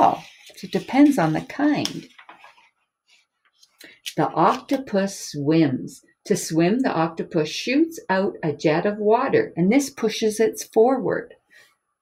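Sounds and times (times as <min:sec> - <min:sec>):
person speaking: 0:00.0 - 0:02.7, 0:03.6 - 0:05.7
paper page turning: 0:00.0 - 0:04.9.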